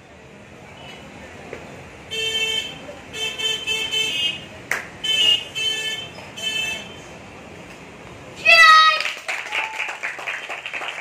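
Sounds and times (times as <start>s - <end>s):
vehicle horn toots: 2.1s - 4.4s, 5.0s - 7.0s.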